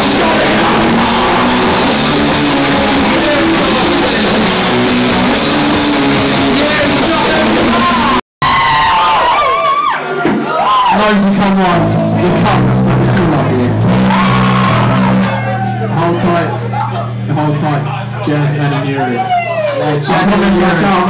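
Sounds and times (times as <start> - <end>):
person singing or shouting: 0.0 - 5.4, 6.2 - 8.2, 13.7 - 15.8
live rock band playing: 0.0 - 8.2, 11.6 - 17.3.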